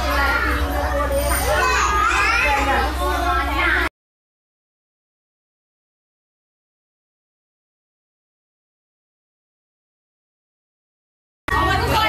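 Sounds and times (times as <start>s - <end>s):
children talking and calling out: 0.0s - 3.9s, 11.5s - 12.0s.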